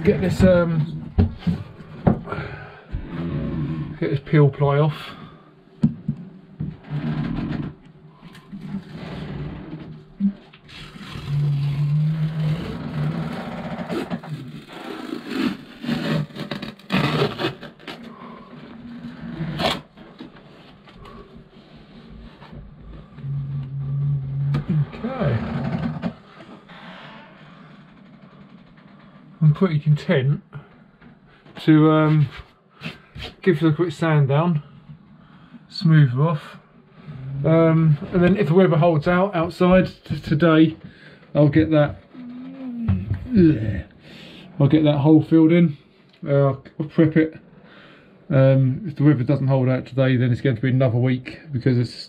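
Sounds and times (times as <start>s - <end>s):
peel ply tearing and scraping: 10.7s - 18.3s, 18.9s - 20.0s.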